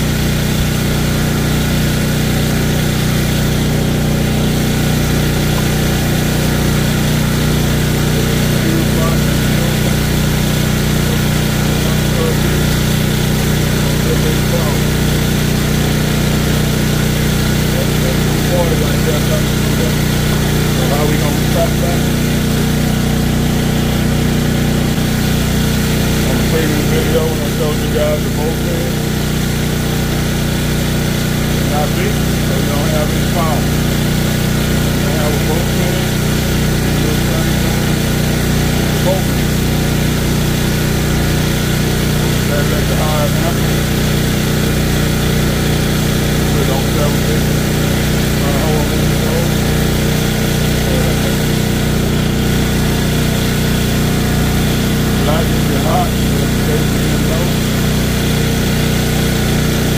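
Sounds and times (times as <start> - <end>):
generator engine running: 0.0 - 59.9.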